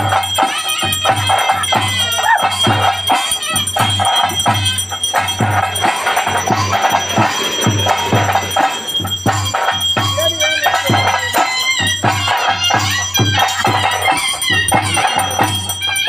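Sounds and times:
drums beating: 0.0 - 16.0
jingling metal percussion: 0.0 - 16.0
wavering high melody: 0.4 - 11.8.

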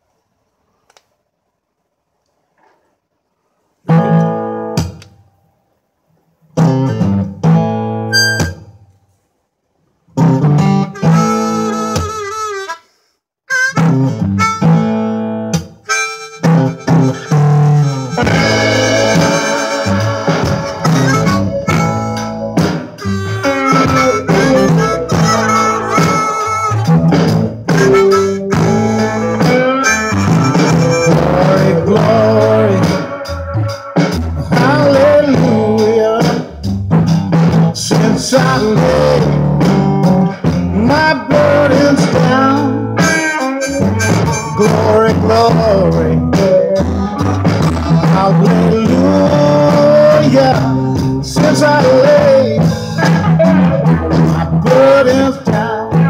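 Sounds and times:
blues song from speakers: 3.9 - 5.2, 6.5 - 8.8, 10.1 - 56.0
harmonica playing: 8.1 - 8.6, 10.6 - 15.2, 15.8 - 35.4, 41.0 - 48.4.

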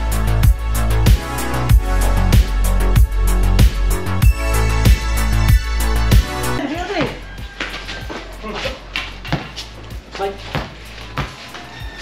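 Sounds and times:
basketball bouncing on concrete: 7.0 - 9.6, 10.5 - 12.0.

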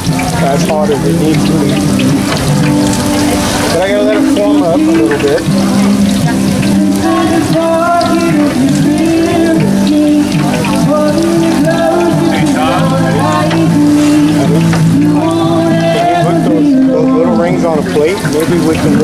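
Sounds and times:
dough frying in deep oil: 0.0 - 19.0
music with held stepping notes: 0.0 - 19.0.

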